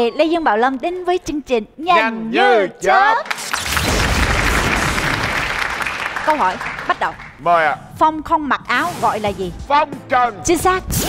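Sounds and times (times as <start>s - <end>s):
audience applauding: 3.2s - 7.5s.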